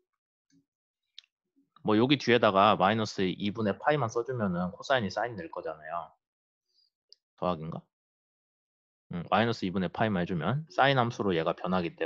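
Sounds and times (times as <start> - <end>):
man's voice: 1.9 - 6.0.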